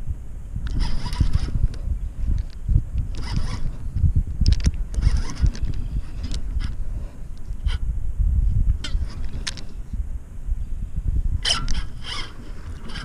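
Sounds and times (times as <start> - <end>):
low microphone rumble: 0.0 - 13.0
fishing reel whirring: 0.7 - 1.8, 3.1 - 3.9, 4.9 - 6.8, 11.4 - 13.0.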